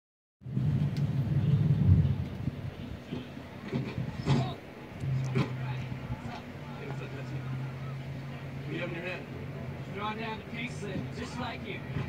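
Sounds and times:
car engine rumbling: 0.4s - 12.0s.

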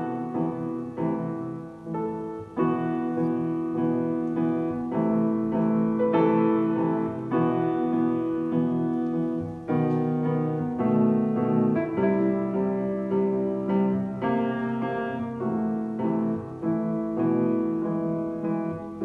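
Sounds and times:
solo grand piano classical piece: 0.0s - 19.0s.

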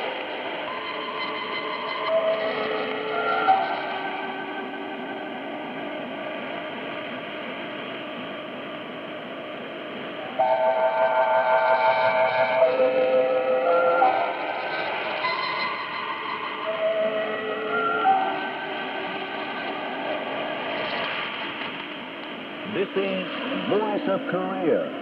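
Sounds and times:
radio hiss and static: 18.8s - 25.0s.

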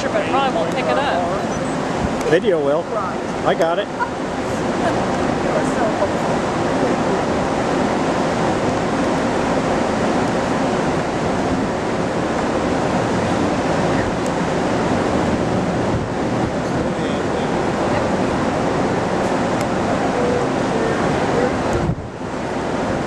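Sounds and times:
wind rushing on microphone: 0.0s - 23.0s.

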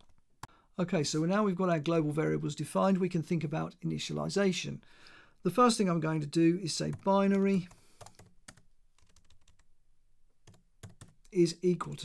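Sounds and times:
faint keyboard typing: 6.8s - 9.7s, 10.4s - 12.0s.

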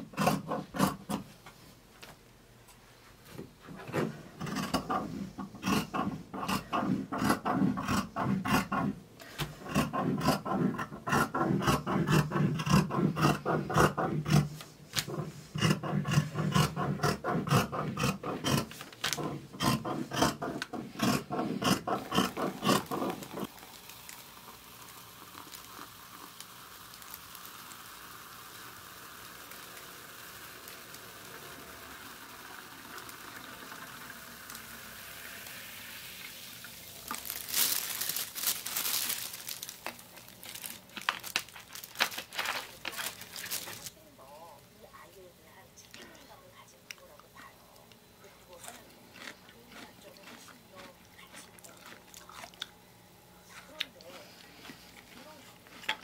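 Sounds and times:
shears cutting fabric: 0.0s - 1.2s, 4.0s - 9.0s, 9.6s - 23.5s
faint steady hiss: 23.1s - 56.0s.

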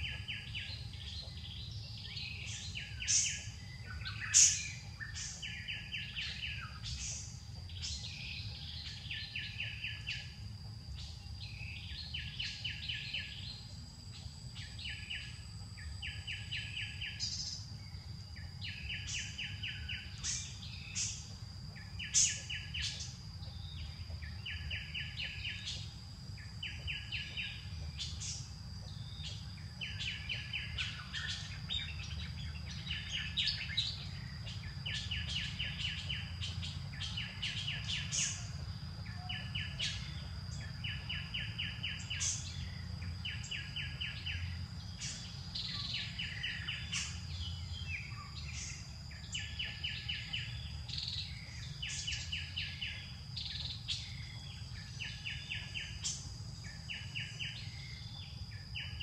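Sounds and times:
high-pitched whine: 0.0s - 59.0s.

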